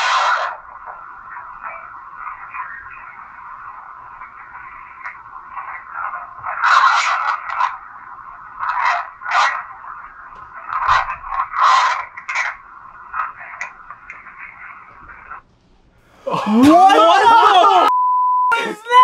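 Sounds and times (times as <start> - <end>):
scratchy crackling bursts: 0.0 - 15.5.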